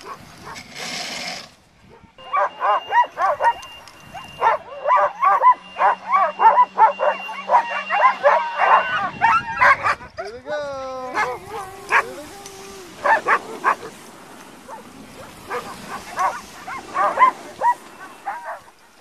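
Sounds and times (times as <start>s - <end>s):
dogs barking and yipping: 0.0s - 0.8s, 1.8s - 10.4s, 11.1s - 19.0s
dog drawn-out call: 1.9s - 10.3s, 11.1s - 14.0s, 14.6s - 19.0s.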